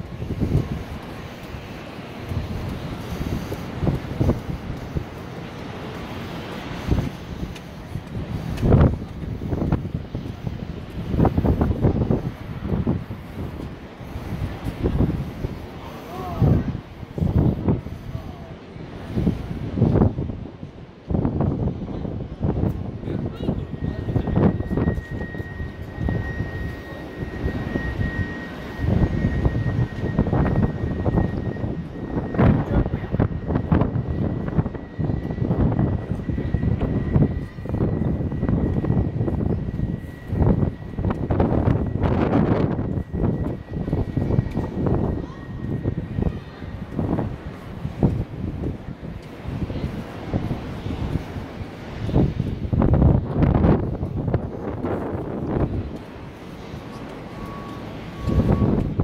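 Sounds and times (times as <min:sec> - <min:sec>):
wind buffeting microphone: 0:00.0 - 0:59.0
faint steady high tone: 0:23.1 - 0:47.9, 0:55.6 - 0:59.0.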